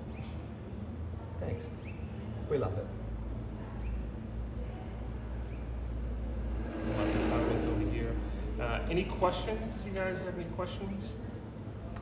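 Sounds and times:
low hum and rumble: 0:02.1 - 0:12.0.

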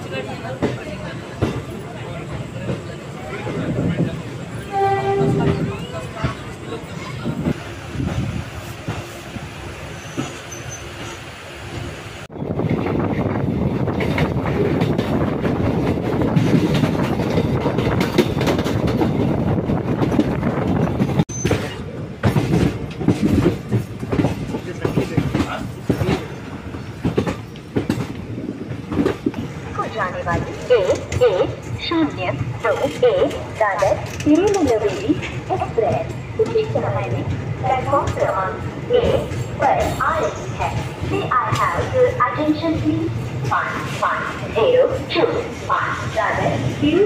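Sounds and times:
train wheels rumbling on rails: 0:00.0 - 0:47.0
wheels clicking over rail joints: 0:30.3 - 0:42.6.

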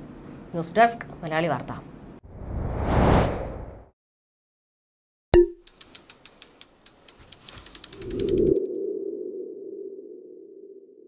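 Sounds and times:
sharp ticks speeding up: 0:05.6 - 0:08.6.

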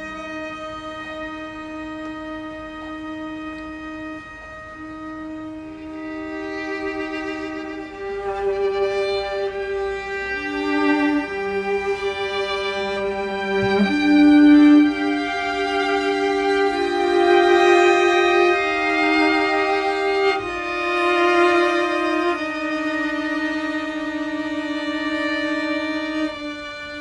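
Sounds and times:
string quartet playing: 0:00.0 - 0:27.0.

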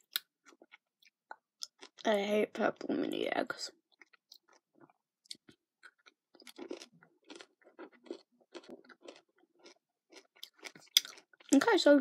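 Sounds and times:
chewing and crunching candy: 0:00.0 - 0:12.0.

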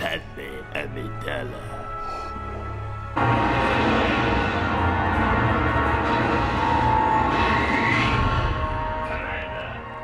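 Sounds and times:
dramatic music: 0:00.0 - 0:10.0.

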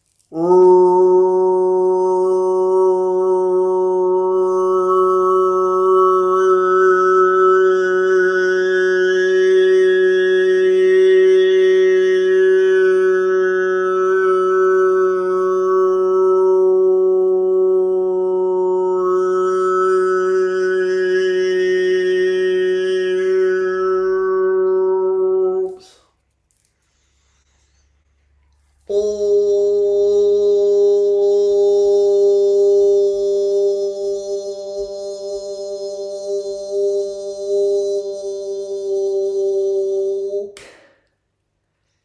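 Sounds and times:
man singing a long steady tone: 0:00.2 - 0:26.2, 0:28.8 - 0:40.6.

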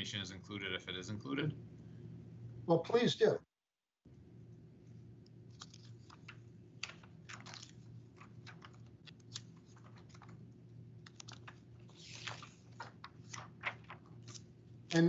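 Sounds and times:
low electrical hum: 0:00.0 - 0:03.4, 0:04.1 - 0:15.0.

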